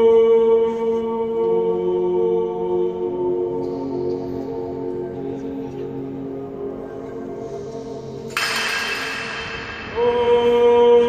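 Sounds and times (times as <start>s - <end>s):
man singing with echo: 0.0s - 8.3s, 9.1s - 11.0s.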